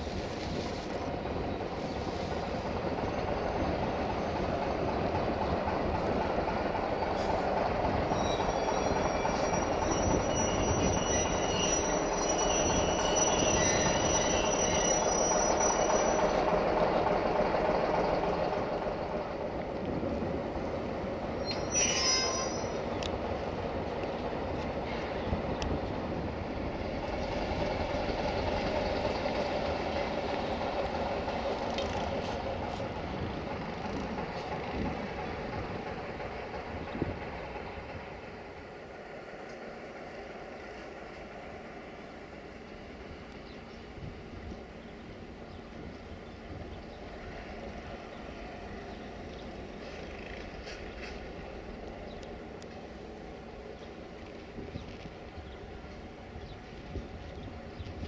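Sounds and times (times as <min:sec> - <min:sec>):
train wheels rumbling on rail: 0:00.0 - 0:58.0
high wheel squeal: 0:08.0 - 0:16.6, 0:21.4 - 0:23.0.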